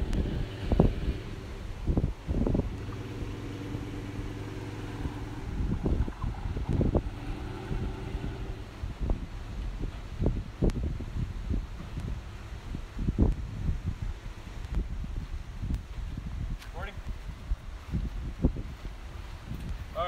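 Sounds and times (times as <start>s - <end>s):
pickup truck engine running: 0.0s - 10.6s
wind buffeting microphone: 0.0s - 20.0s.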